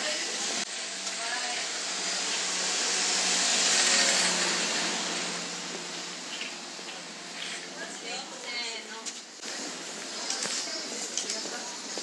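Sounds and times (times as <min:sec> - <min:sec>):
rushing hiss: 0:00.0 - 0:07.6.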